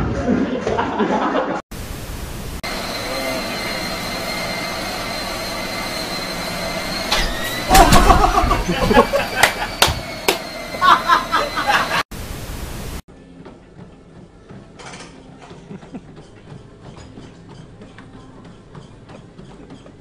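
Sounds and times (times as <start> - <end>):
even hiss: 1.8 - 7.7
woman laughing loudly: 7.7 - 10.0, 10.7 - 12.0.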